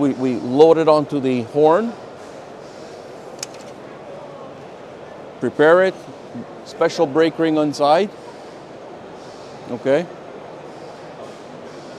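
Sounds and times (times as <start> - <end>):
busy exhibition hall noise: 0.0 - 11.9
sharp click: 3.4 - 3.8.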